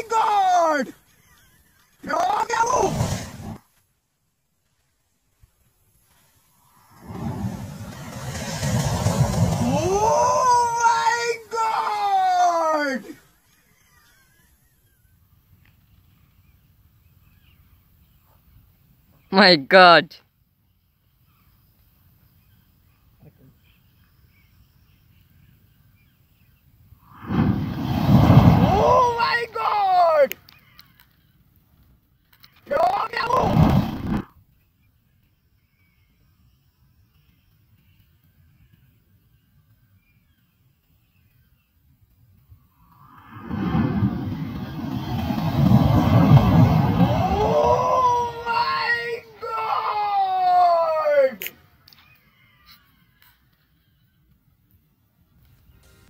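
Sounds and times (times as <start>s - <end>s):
person shouting: 0.0s - 0.9s, 9.6s - 13.2s, 28.6s - 30.3s, 47.1s - 51.4s
match heads flaring up: 2.6s - 3.7s, 6.7s - 10.3s, 27.1s - 29.0s, 33.3s - 34.3s
rushing whoosh of flame: 2.8s - 3.6s, 6.7s - 10.4s, 27.1s - 29.2s, 33.4s - 34.2s, 43.0s - 48.4s
slowed-down deep rumble: 7.0s - 10.2s, 43.0s - 48.0s
slowed-down drawn-out shout: 7.0s - 13.2s, 28.2s - 30.4s, 43.0s - 51.6s.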